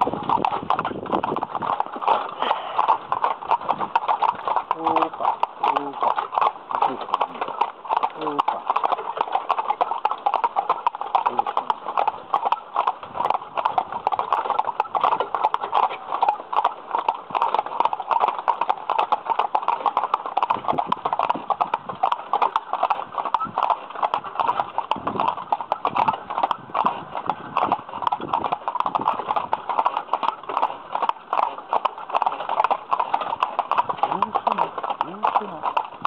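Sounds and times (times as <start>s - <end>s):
horse hooves clip-clopping on pavement: 0.0s - 36.0s.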